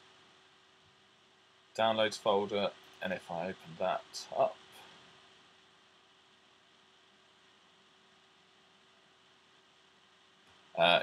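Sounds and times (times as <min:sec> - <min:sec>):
faint microphone hiss: 0:00.0 - 0:11.0.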